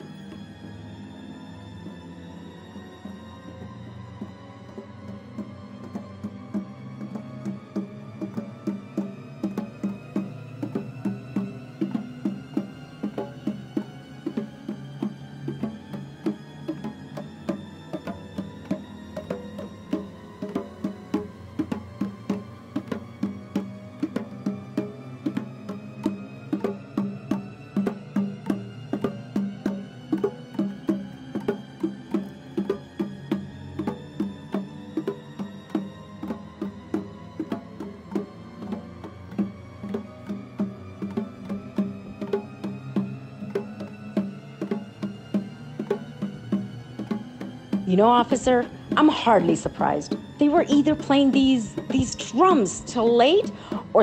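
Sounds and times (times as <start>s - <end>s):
hand drum rhythm: 4.2s - 54.0s.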